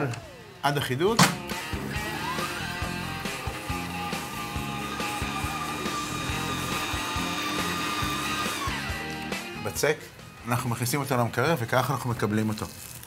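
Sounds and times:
stand mixer motor whining: 0:00.0 - 0:00.6, 0:01.3 - 0:09.6
background music: 0:00.0 - 0:13.0.

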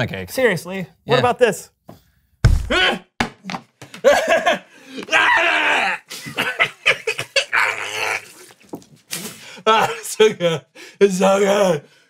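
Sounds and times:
man spluttering milk: 0:07.5 - 0:09.5.

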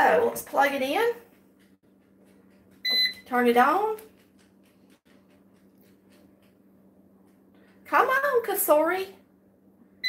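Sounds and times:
air fryer beep: 0:02.8 - 0:03.3.

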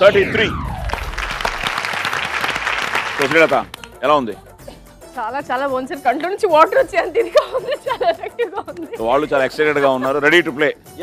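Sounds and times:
audience applauding: 0:00.8 - 0:03.8.

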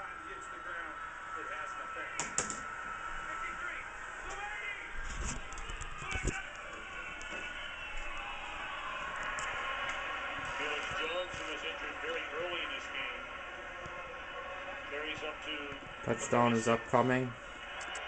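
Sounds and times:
stadium crowd din: 0:00.0 - 0:18.0
commentator's voice: 0:10.4 - 0:13.4, 0:14.9 - 0:17.4.

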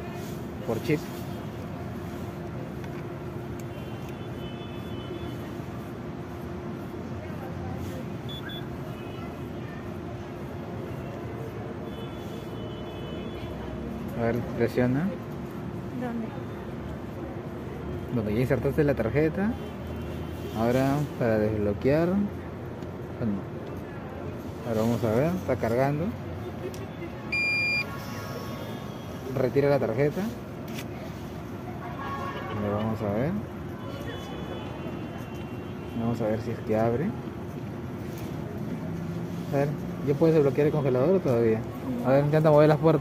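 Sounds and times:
street background noise: 0:00.0 - 0:43.0
short high electronic beeps: 0:27.3 - 0:27.9.

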